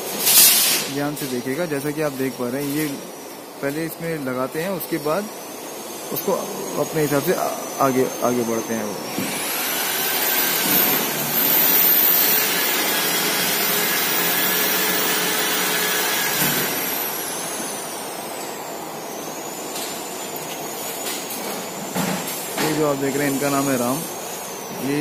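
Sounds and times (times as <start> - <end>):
power tool motor whining: 9.1 - 17.8.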